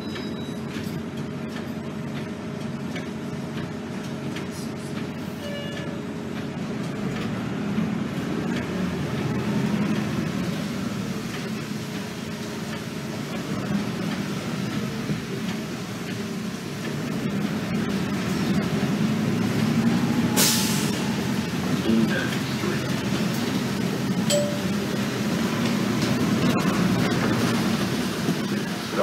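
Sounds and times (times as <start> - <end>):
bus engine and road rumble: 0.0 - 29.0.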